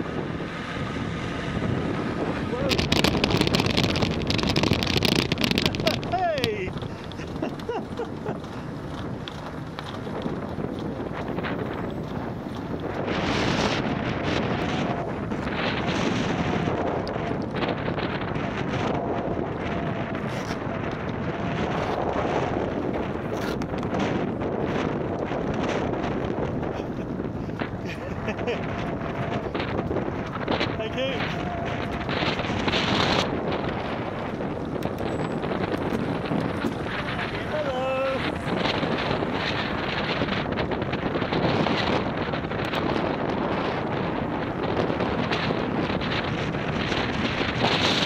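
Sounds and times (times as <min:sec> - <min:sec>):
tyre and road rumble: 0:00.0 - 0:48.0
wind buffeting microphone: 0:00.0 - 0:48.0.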